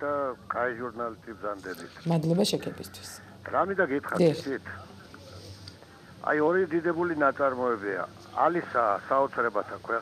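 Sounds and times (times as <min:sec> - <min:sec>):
person talking: 0:04.1 - 0:04.5.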